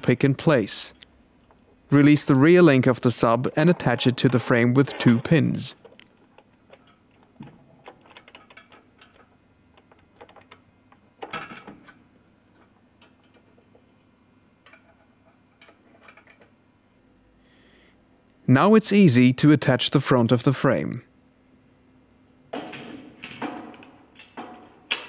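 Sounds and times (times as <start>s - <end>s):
metallic clicks and knocks: 3.6s - 14.0s.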